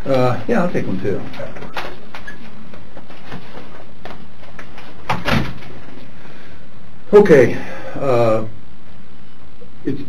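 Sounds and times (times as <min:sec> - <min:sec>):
steady room hiss: 0:00.0 - 0:10.0
door closing: 0:05.0 - 0:05.8.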